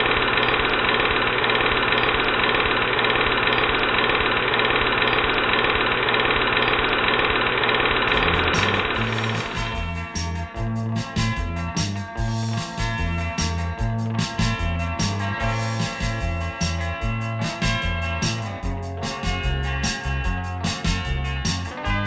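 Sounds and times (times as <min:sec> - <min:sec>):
film projector clattering: 0:00.0 - 0:10.0
music with bass line: 0:08.1 - 0:22.0.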